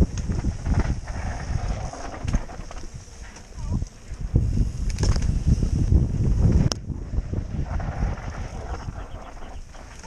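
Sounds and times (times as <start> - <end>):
mountain bike rattling over dirt: 0.0 - 10.0.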